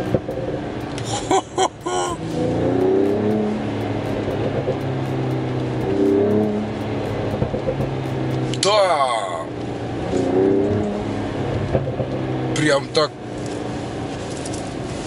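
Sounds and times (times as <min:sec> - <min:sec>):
exhaust pops: 0:00.0 - 0:08.7
car engine revving: 0:00.0 - 0:15.0.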